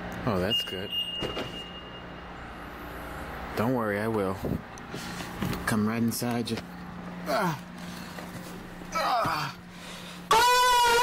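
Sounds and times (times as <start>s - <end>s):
steady high-pitched beep: 0.4s - 2.4s.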